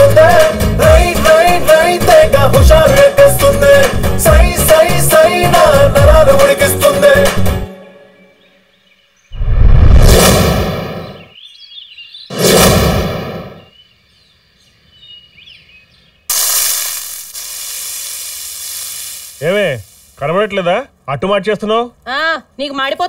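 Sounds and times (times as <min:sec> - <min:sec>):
cinematic whoosh: 0:09.4 - 0:11.2.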